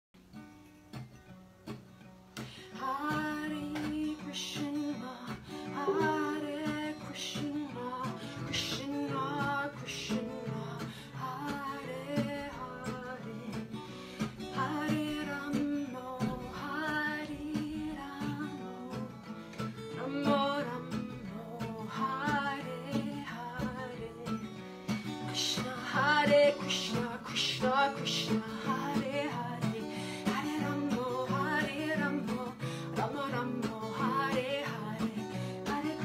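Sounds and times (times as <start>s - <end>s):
acoustic guitar: 0.2s - 36.0s
woman singing: 2.6s - 24.6s, 25.2s - 36.0s.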